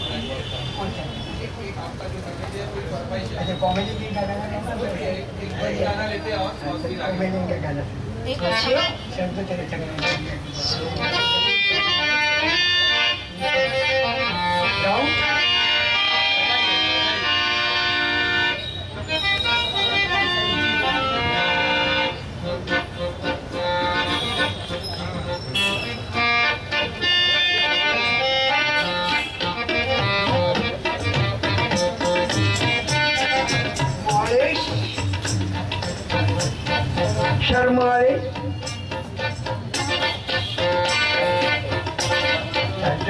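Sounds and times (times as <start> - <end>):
harmonium chords: 8.4 - 43.0.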